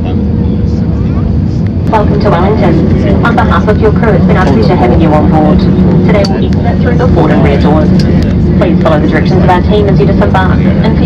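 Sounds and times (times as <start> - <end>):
airplane cabin engine rumble: 0.0 - 11.0.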